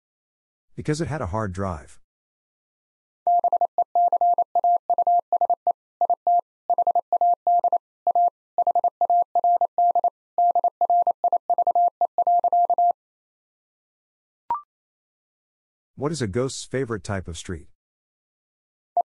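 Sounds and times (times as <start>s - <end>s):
morse code tone: 3.3s - 13.0s.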